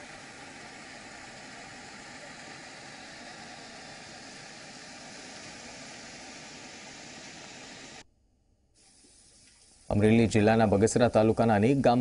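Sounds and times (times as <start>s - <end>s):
floodwater rushing and churning: 0.0s - 8.0s.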